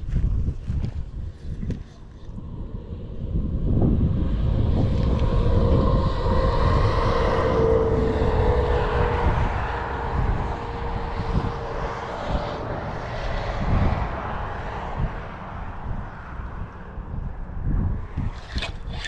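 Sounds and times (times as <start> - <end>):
engine drone: 0.0 - 19.0
wind rumble on microphone: 0.0 - 19.0.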